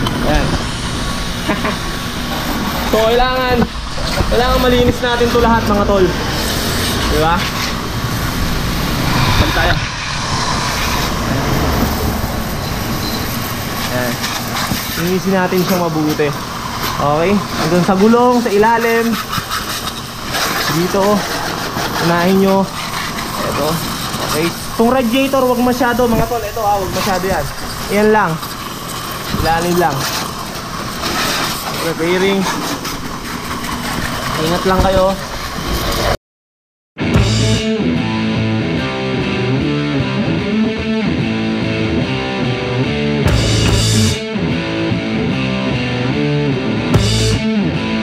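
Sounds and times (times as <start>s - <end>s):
pressure washer spraying: 0.0s - 36.2s.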